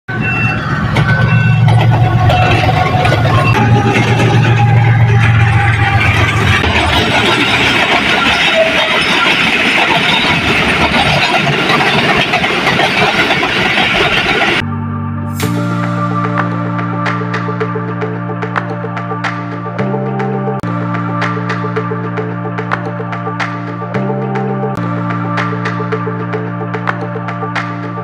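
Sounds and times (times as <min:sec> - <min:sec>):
coaches rumbling on rails: 0:00.1 - 0:14.6
locomotive engine drone: 0:00.1 - 0:27.6.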